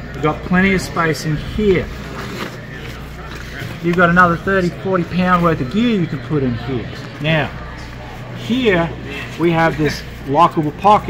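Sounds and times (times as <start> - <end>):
faint background voices: 0.0 - 11.0.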